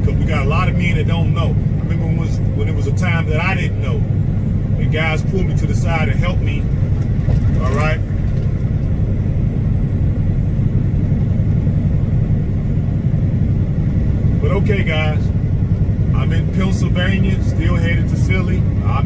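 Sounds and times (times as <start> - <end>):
man's voice: 0.0 - 4.1, 4.8 - 6.7, 7.5 - 8.0, 14.4 - 15.3, 16.1 - 19.0
truck engine and tyres rumble: 0.0 - 19.0.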